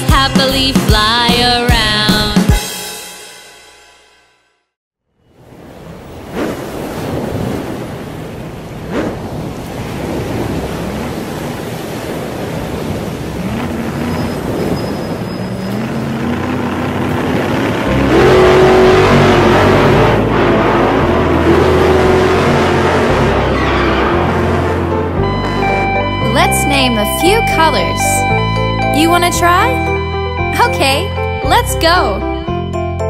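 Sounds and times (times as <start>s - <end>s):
cartoon car engines revving: 12.6s - 32.4s
music with stepped bass line: 21.4s - 33.0s.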